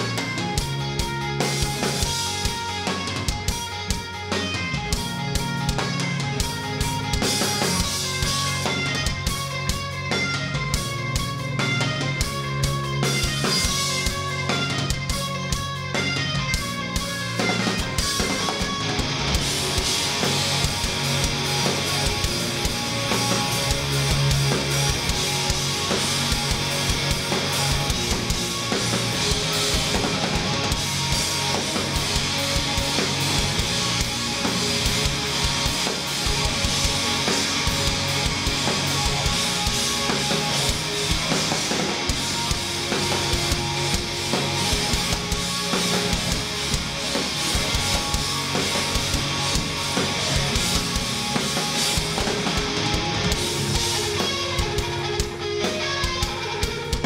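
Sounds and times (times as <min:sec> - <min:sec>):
bass guitar: 0:00.0 - 0:57.0
distorted electric guitars: 0:00.0 - 0:57.0
drums and cymbals: 0:00.0 - 0:57.0.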